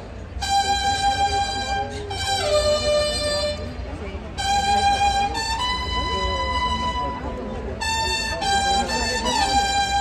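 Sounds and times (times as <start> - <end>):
violin: 0.0 - 10.0.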